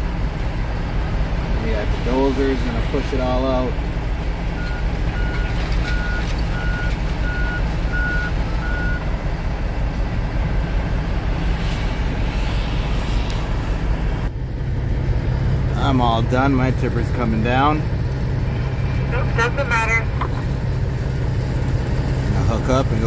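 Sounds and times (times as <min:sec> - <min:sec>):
diesel engine inside truck cab: 0:00.0 - 0:23.0
diesel machinery running: 0:00.0 - 0:23.0
backup alarm beeping: 0:04.6 - 0:09.0.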